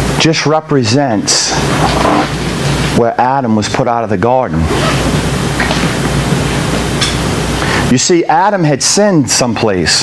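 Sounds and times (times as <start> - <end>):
loud hiss with low rumble: 0.0 - 10.0.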